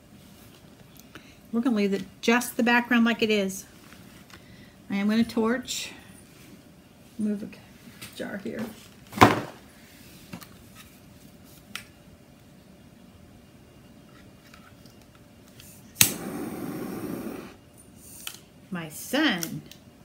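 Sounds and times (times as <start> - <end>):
torch hissing: 16.0 - 17.6
torch igniter click: 16.0 - 17.6.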